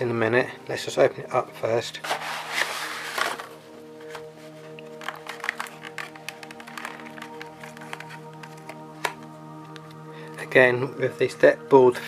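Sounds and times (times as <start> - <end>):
background music of held notes: 0.0 - 12.0
plastic packaging crackling: 2.0 - 9.2.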